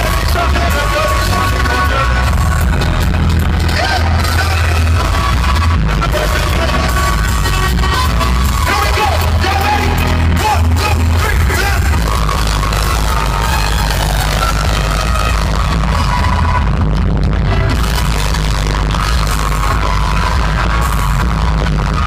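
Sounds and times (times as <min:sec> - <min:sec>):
live hip-hop music over loudspeakers: 0:00.0 - 0:22.0.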